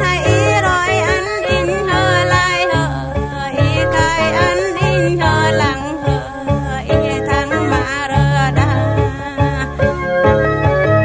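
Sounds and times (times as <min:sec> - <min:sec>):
person singing folk song: 0:00.0 - 0:10.1
pulsing bass line: 0:03.6 - 0:05.8.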